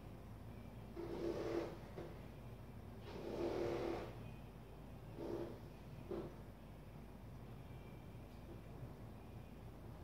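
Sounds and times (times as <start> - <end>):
marker drawing on whiteboard: 0.9 - 2.2, 5.1 - 6.4.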